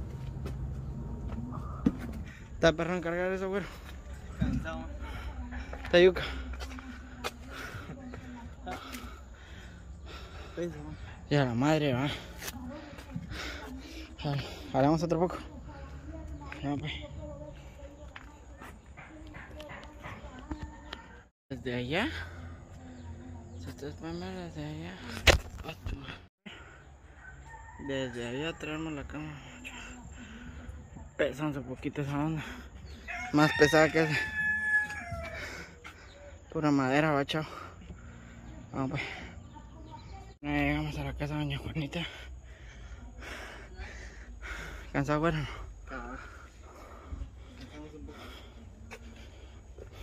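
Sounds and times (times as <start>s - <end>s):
person breathing hard: 42.2s - 50.0s.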